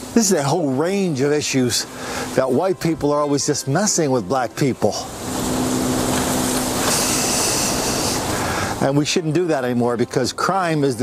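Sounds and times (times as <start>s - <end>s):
loud rushing noise with low hum: 0.0s - 9.3s.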